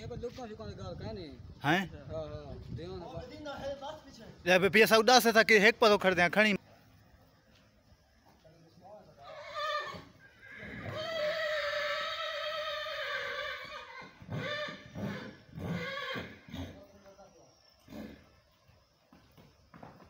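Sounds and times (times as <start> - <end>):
horse whinnying: 9.2 - 16.9, 17.8 - 18.4.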